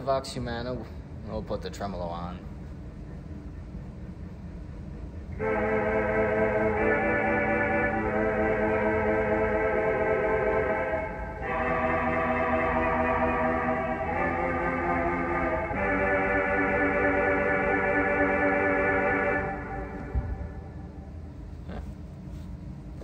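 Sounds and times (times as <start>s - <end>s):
pipe organ chords with tremolo: 5.0s - 21.5s.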